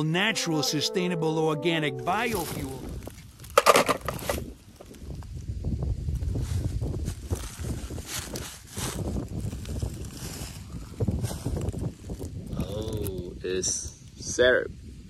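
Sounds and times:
wind rumble on microphone: 0:02.7 - 0:15.0
dry leaves crunching and rustling: 0:06.2 - 0:12.4.

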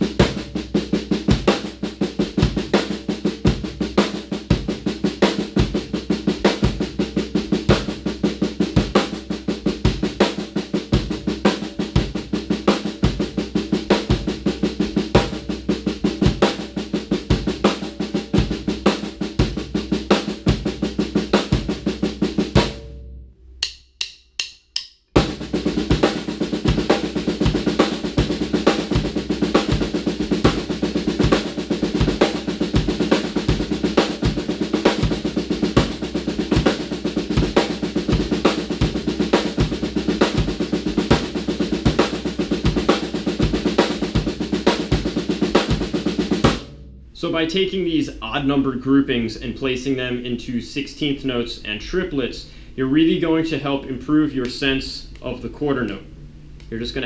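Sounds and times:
snare drum triplets: 0:00.0 - 0:22.9, 0:25.2 - 0:47.5.

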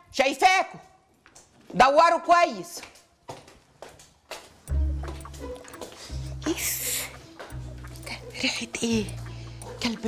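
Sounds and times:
soft footsteps: 0:00.8 - 0:01.9, 0:02.7 - 0:10.0
background music with deep bass: 0:04.7 - 0:10.0.

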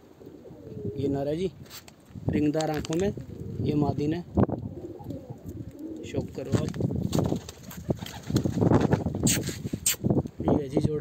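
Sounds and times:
pigeon wings flapping: 0:06.3 - 0:09.5.

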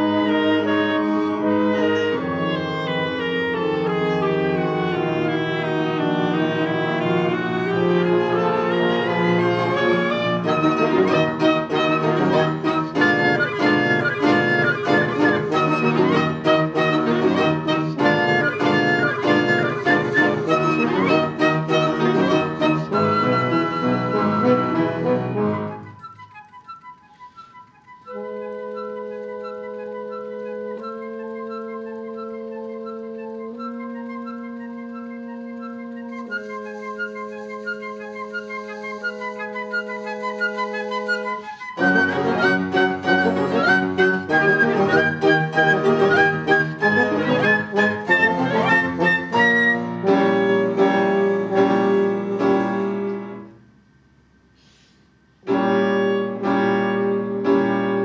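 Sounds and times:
chamber ensemble playing: 0:00.0 - 0:53.6, 0:55.5 - 0:58.0
high flute notes: 0:00.0 - 0:53.8
piano: 0:00.0 - 0:58.0.

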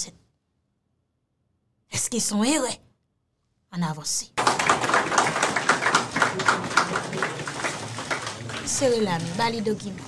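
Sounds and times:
applause: 0:04.4 - 0:10.0.

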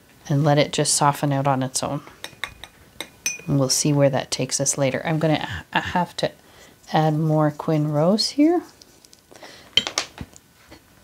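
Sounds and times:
paintbrush clinking on ceramic palette: 0:02.2 - 0:03.7.

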